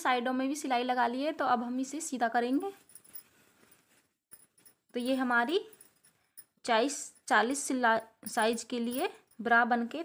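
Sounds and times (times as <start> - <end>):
fabric rustling: 2.6 - 6.4.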